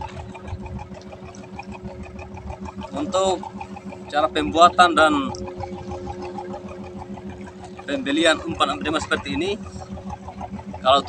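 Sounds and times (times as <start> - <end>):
boat engine idling: 0.0 - 11.0.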